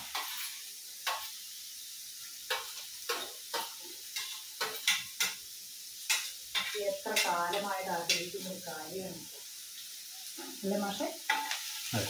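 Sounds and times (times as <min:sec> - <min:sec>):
metal spoon scraping a pan: 0:00.0 - 0:01.6, 0:02.3 - 0:08.9, 0:11.2 - 0:12.0
food sizzling in a pan: 0:00.0 - 0:12.0.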